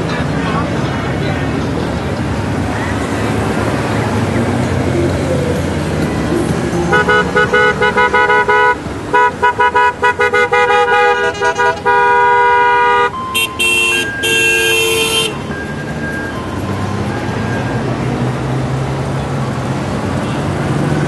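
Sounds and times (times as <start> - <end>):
motorcycle engines running: 0.0 - 9.5
motorcycle horn toots: 6.9 - 15.4.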